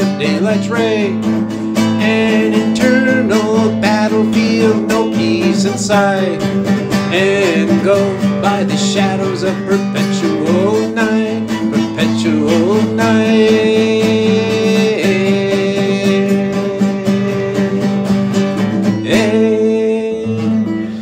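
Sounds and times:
man singing long notes: 0:00.0 - 0:18.3, 0:18.9 - 0:21.0
strummed acoustic guitar: 0:00.0 - 0:21.0.

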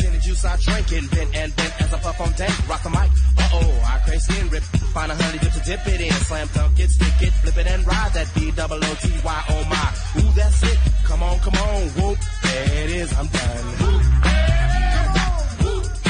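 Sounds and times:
rapping over heavy bass line: 0:00.0 - 0:16.0.

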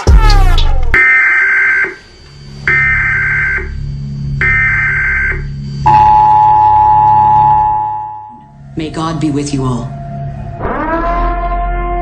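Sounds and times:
low steady hum: 0:02.0 - 0:10.6
two-tone attention signal: 0:04.4 - 0:08.5.

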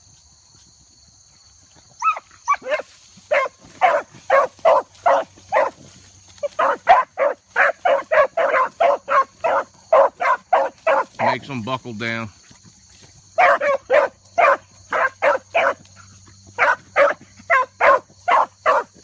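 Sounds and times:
crickets chirping: 0:00.0 - 0:19.0
dogs barking: 0:02.0 - 0:05.8, 0:06.4 - 0:11.4, 0:13.4 - 0:19.0.

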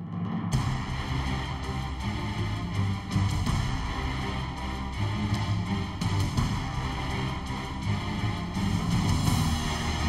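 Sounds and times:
background music with bass notes: 0:00.0 - 0:10.0.

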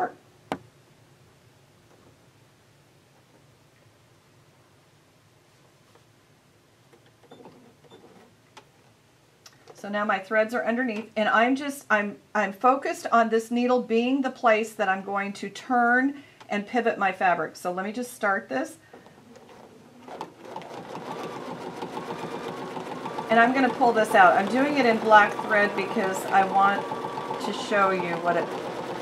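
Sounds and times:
sewing thread rustling: 0:18.9 - 0:29.0.

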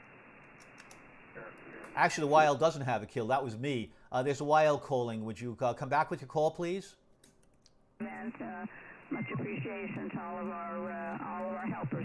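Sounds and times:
radio static hiss: 0:00.0 - 0:02.8, 0:08.0 - 0:12.0.

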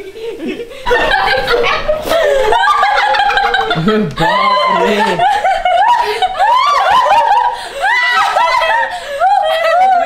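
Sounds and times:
women laughing: 0:00.0 - 0:10.0.

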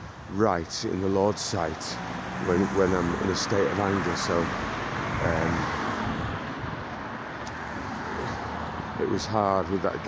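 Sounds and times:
cars passing on street: 0:00.0 - 0:10.0.

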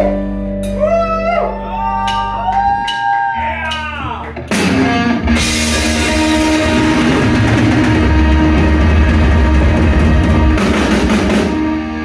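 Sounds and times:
rock band playing a power ballad: 0:00.0 - 0:12.0.

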